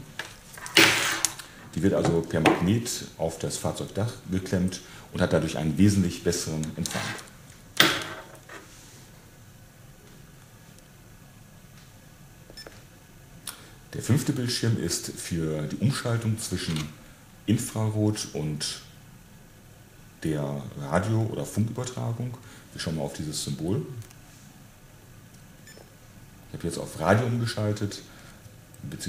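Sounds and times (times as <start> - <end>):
low room hum: 0.0 - 29.0
person speaking: 0.8 - 7.4.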